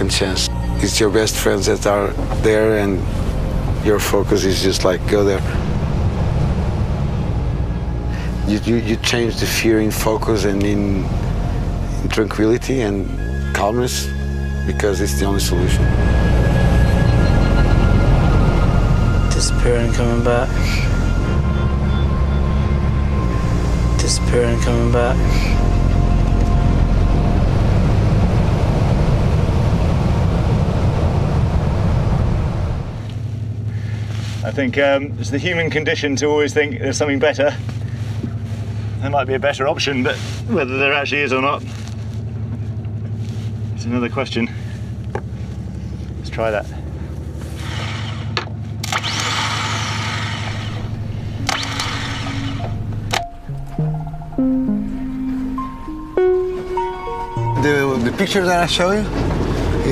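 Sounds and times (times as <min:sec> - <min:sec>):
background music: 0:00.0 - 0:29.0, 0:50.5 - 0:59.9
wind: 0:00.0 - 0:54.4, 0:55.2 - 0:59.9
motorboat engine rumble: 0:00.0 - 0:59.9.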